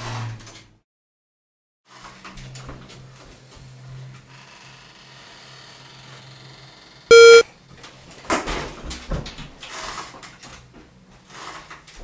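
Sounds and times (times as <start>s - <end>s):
short electronic beep: 7.1s - 7.4s.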